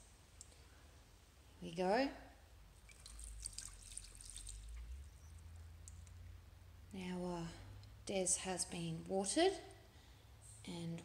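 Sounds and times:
water dripping: 0:02.7 - 0:06.4
water poured onto soil: 0:02.8 - 0:04.9.

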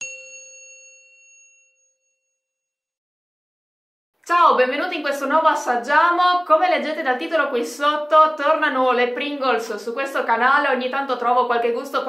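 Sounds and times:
bell-like ding: 0:00.0 - 0:02.7.

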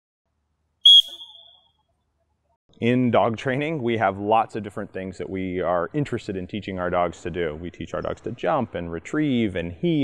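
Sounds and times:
high whistle blast: 0:00.8 - 0:01.6.

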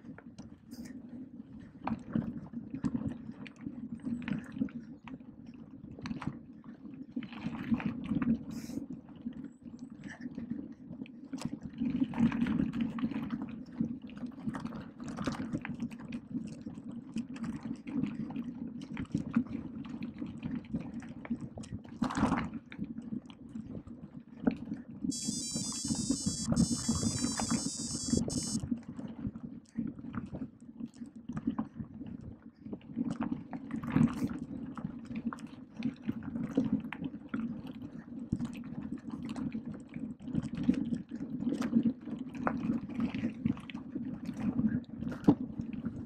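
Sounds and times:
high buzzy stuttering tone: 0:25.1 - 0:28.6.

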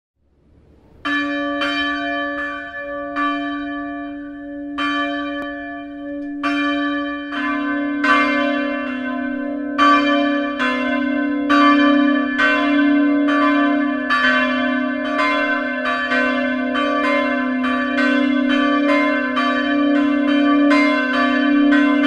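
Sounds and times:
church bells ringing: 0:00.5 - 0:22.0
lower-pitched bell: 0:00.5 - 0:22.0.

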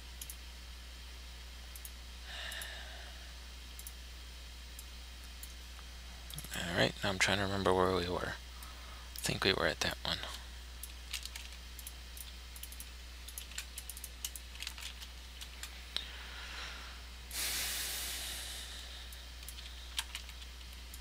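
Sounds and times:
keyboard and mouse clicks: 0:10.8 - 0:15.7, 0:19.4 - 0:21.0
hiss: 0:17.3 - 0:18.9.

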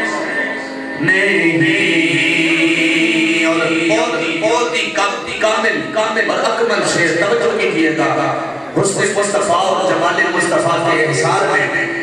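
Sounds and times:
man chanting verse: 0:00.0 - 0:12.0.

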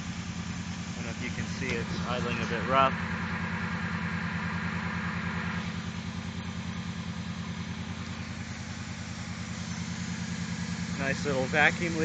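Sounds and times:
car engine idling rough: 0:00.0 - 0:12.0.

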